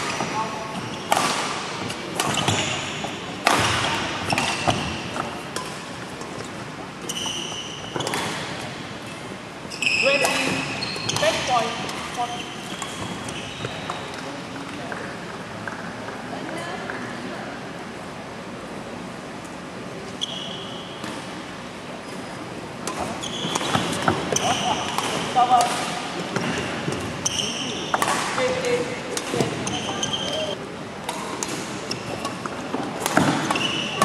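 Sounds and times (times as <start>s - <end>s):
shoes squeaking on court floor: 0.0s - 15.9s, 20.1s - 21.4s, 22.0s - 30.6s, 31.2s - 34.0s
murmur of spectators: 0.0s - 34.0s
brief high squeak: 9.7s - 11.3s, 20.2s - 21.0s, 29.6s - 30.6s.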